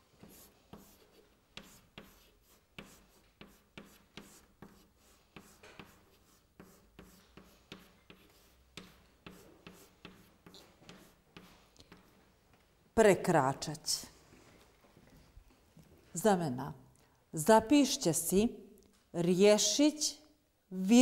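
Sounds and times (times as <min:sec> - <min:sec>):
chalk tapping and scraping: 0:00.0 - 0:12.3.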